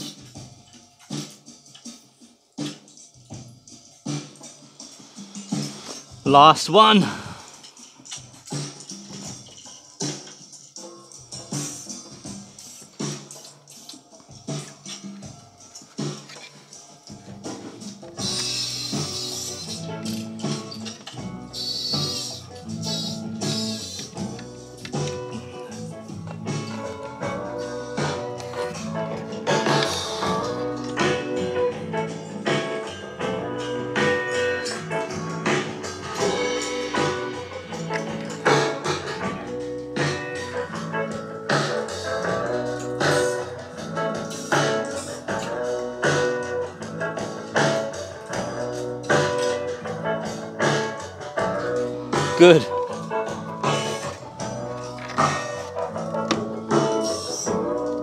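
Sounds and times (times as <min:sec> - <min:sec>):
guitar music through a speaker: 0:10.8 - 0:58.0.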